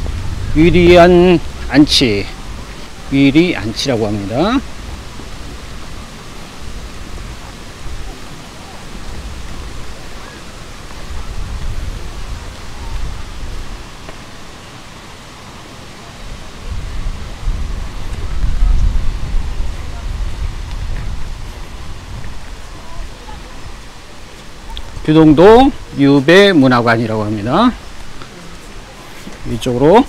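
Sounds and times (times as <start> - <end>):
wind buffeting microphone: 0.0 - 15.3, 16.2 - 26.0.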